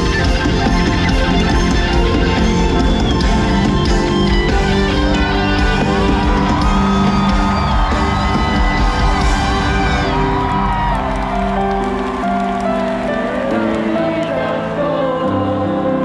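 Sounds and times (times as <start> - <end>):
live concert music: 0.0 - 16.0
crowd whooping and cheering: 0.1 - 14.8.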